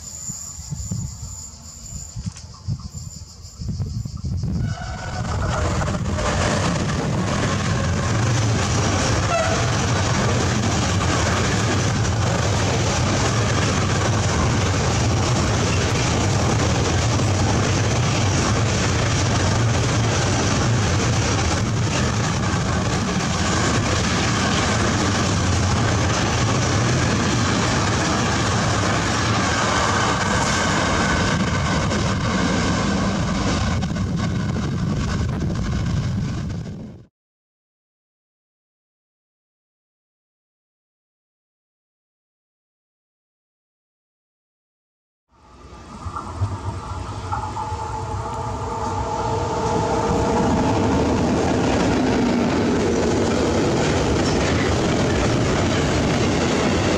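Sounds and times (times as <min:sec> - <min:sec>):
freight train wheels rumbling on rails: 0:00.0 - 0:37.1, 0:45.5 - 0:56.9.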